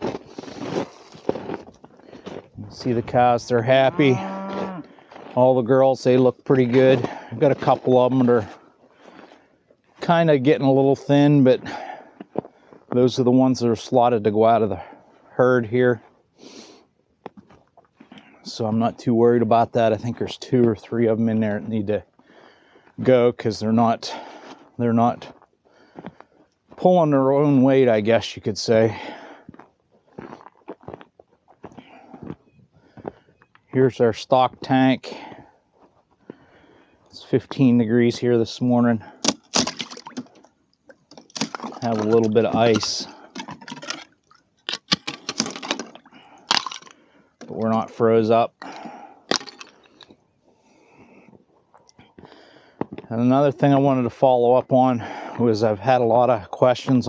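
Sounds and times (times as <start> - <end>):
footsteps crunching on frozen grass: 0.0 - 10.0, 29.4 - 33.2
man breathing through nose: 8.9 - 9.6, 16.4 - 16.9, 22.2 - 23.0, 25.7 - 26.5, 31.7 - 33.4, 36.2 - 37.1, 52.1 - 52.9
thin ice cracking: 39.2 - 40.4, 41.0 - 47.7, 48.7 - 50.1.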